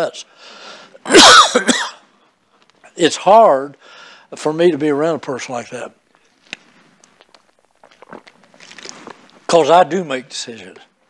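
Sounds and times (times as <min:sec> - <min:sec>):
man coughing hard: 0:01.0 - 0:02.0.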